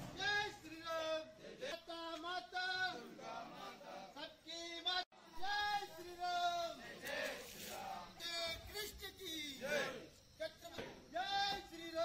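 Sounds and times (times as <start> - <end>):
voices chanting: 0.0 - 4.4, 5.2 - 12.0.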